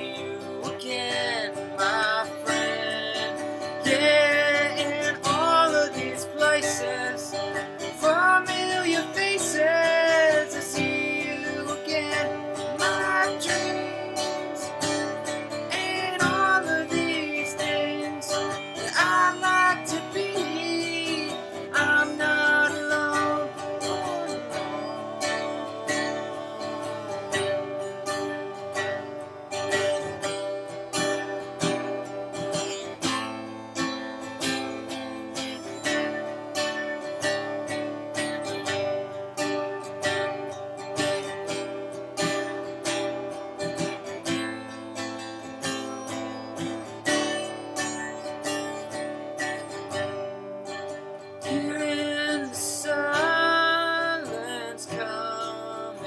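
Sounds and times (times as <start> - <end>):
man singing: 0.0 - 29.9, 51.4 - 56.0
harmonica long notes: 0.0 - 51.3
acoustic guitar strumming: 0.0 - 56.0.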